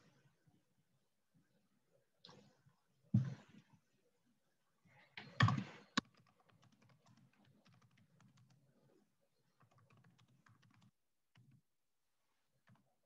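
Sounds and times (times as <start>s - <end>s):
typing on computer keyboard: 5.4s - 8.6s, 9.6s - 11.6s.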